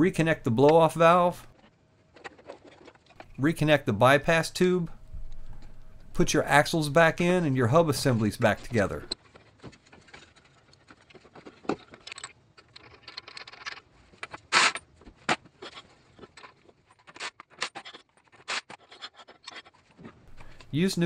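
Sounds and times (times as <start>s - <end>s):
metal clicks and scrapes: 8.0s - 20.8s.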